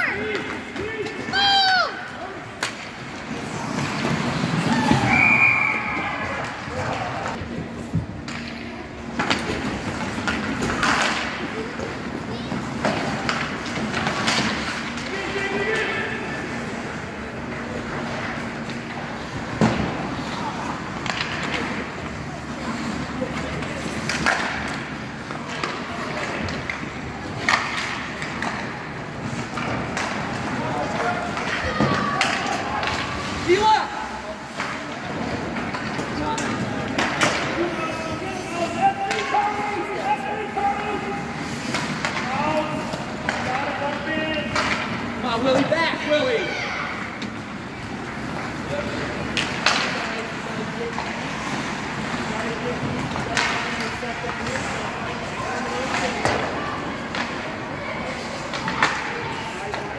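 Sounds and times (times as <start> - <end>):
skates scraping ice: 0.0 - 59.9
hockey sticks and puck knocking: 6.4 - 15.9, 23.4 - 33.7, 34.5 - 37.7, 38.8 - 46.4, 47.2 - 57.6, 58.2 - 59.9.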